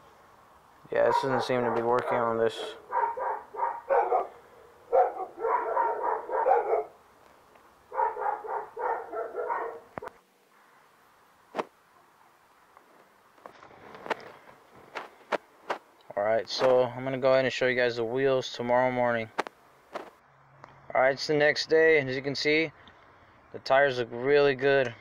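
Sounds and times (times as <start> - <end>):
dog barking: 0.9 - 7.0, 7.9 - 10.2.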